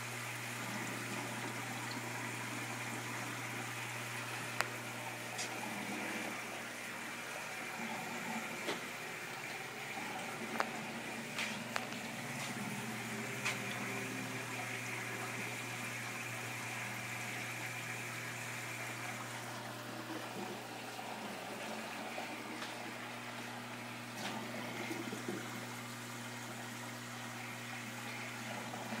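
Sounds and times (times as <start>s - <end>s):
aquarium filters bubbling: 0.0s - 29.0s.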